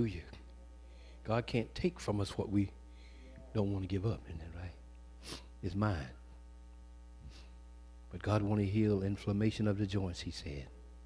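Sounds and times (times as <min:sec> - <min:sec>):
faint hiss: 0:00.0 - 0:06.2
electrical mains hum: 0:00.0 - 0:11.0.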